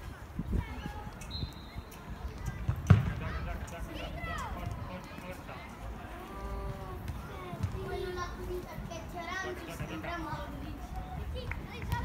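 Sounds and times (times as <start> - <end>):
ball kick thud: 2.6 - 3.2.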